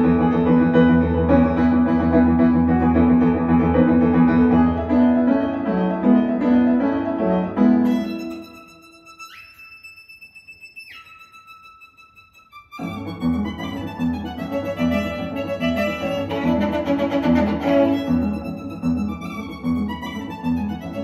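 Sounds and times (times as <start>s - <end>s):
piano music over speakers: 0.0s - 9.3s, 12.8s - 21.0s.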